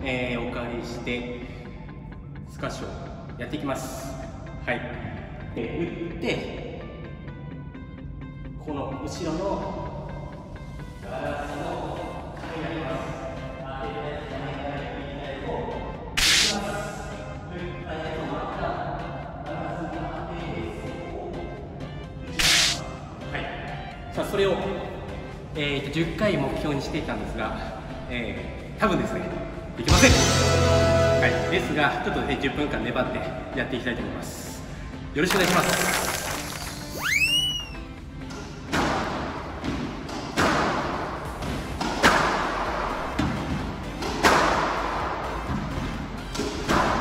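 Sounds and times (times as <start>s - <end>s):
background music: 0.0s - 47.0s
loud swish: 16.2s - 16.7s, 22.4s - 22.9s
swooping whistle sound effect: 36.8s - 37.9s
squash racket hitting ball: 38.5s - 45.4s.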